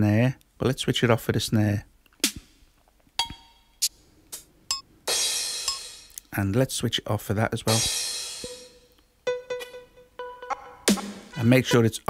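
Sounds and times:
short percussion hits: 7.7 - 11.5.

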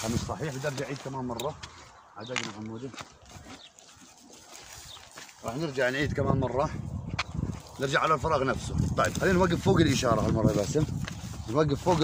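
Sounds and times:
footsteps on stony ground: 0.0 - 12.0
rustling through dry grass: 0.0 - 12.0.

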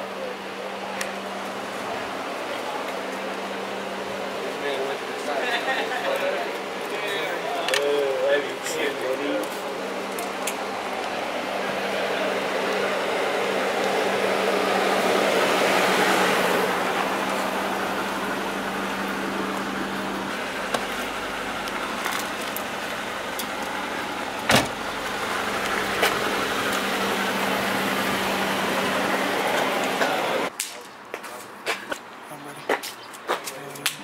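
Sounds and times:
noisy street wash: 0.0 - 34.0.

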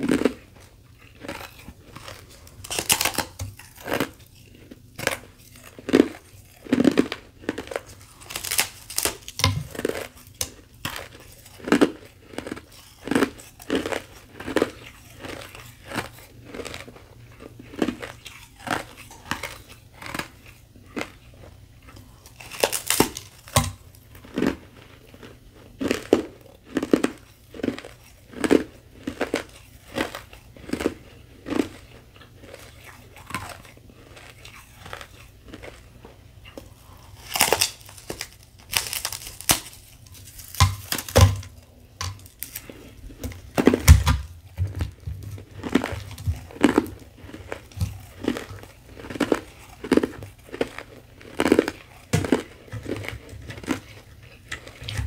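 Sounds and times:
ice being chewed: 0.0 - 55.0.

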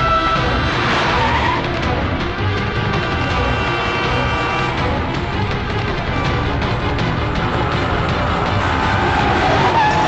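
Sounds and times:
car skidding: 0.0 - 2.1, 2.7 - 4.9, 6.1 - 10.0
dramatic background music: 0.0 - 10.0.

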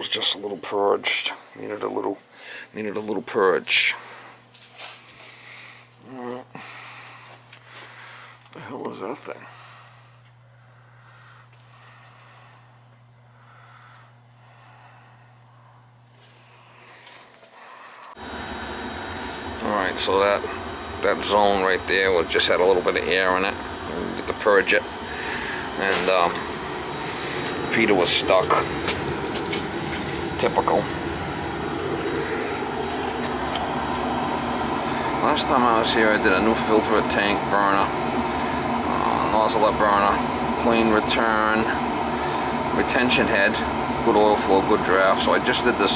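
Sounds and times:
heating equipment humming: 0.0 - 45.9
oil burner roaring: 2.4 - 45.9.

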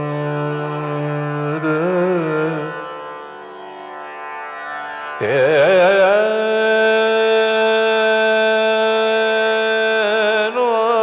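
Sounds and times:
man singing: 0.0 - 2.9, 5.2 - 11.0
tanpura drone: 0.0 - 11.0.

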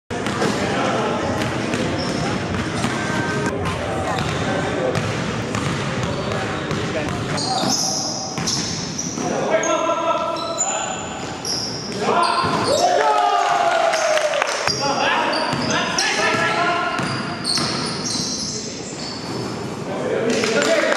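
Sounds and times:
basketballs bouncing on court: 0.1 - 9.4, 11.2 - 12.9, 15.4 - 18.2
sneakers squeaking on floor: 0.1 - 13.0, 14.7 - 19.9.

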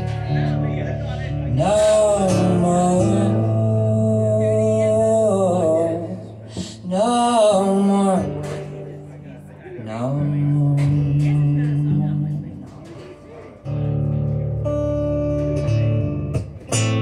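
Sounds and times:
man singing: 0.0 - 13.1
acoustic guitar: 0.0 - 17.0.

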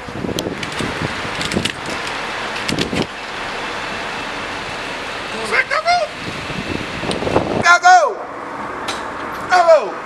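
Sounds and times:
passing traffic: 0.0 - 10.0.

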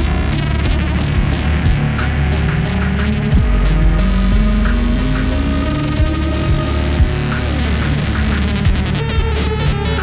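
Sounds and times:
distorted electric bass drone: 0.0 - 10.0.

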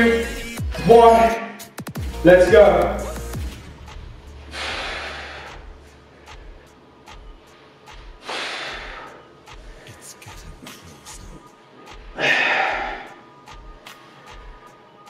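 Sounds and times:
faint background music with beat: 0.0 - 15.0
man breathing hard: 4.4 - 11.2, 12.0 - 14.6.

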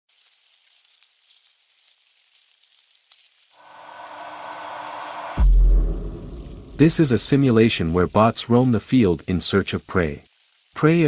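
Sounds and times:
rising swell: 3.6 - 7.1
loud deep boom: 3.6 - 7.3.

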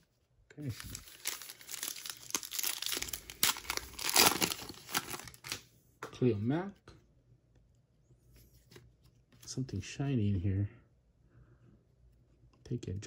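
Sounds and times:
plastic wrapper tearing and crinkling: 0.7 - 5.6.

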